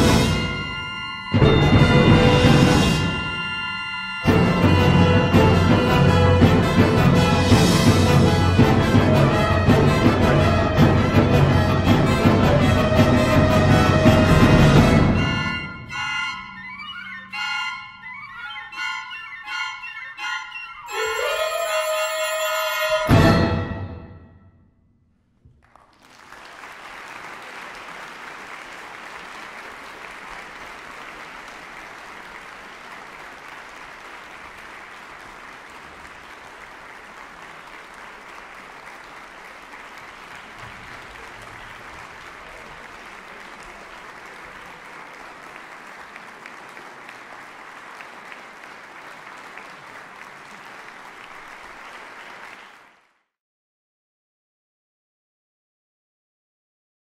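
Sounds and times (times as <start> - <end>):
audience applauding: 25.5 - 53.2.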